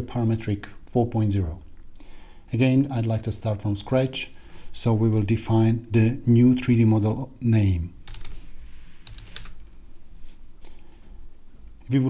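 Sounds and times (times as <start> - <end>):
computer keyboard typing: 8.0 - 8.4, 9.0 - 9.6.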